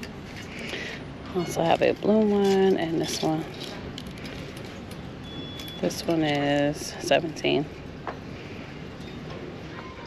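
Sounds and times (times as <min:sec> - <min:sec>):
shirts on hangers rustling: 0:00.0 - 0:07.4
retail store background noise: 0:00.0 - 0:10.0.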